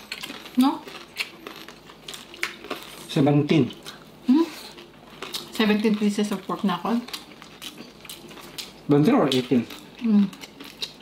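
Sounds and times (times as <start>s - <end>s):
crispy pork skin crunching: 0.0s - 4.0s, 4.7s - 11.0s.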